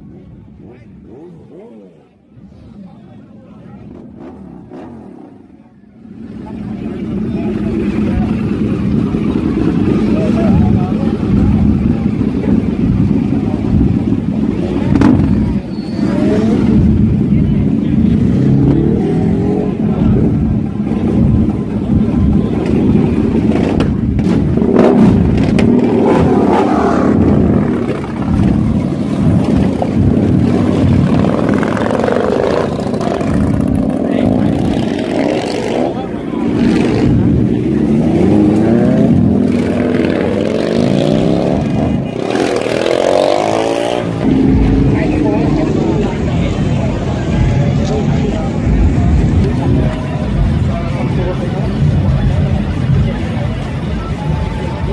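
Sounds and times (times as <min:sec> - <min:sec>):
crowd voices: 0:00.0 - 0:54.9
motorcycle engine revving: 0:00.4 - 0:02.3, 0:03.8 - 0:54.1.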